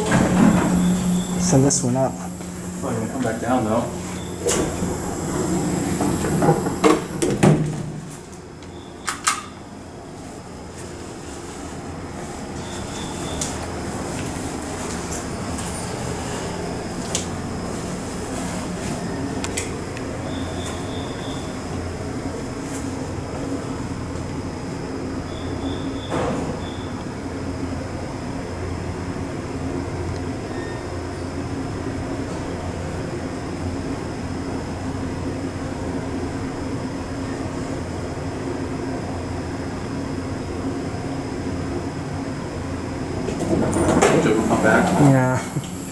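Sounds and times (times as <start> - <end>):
elevator doors closing: 0.0 - 22.6, 25.0 - 27.4, 42.2 - 45.9
elevator car drone: 0.0 - 45.9.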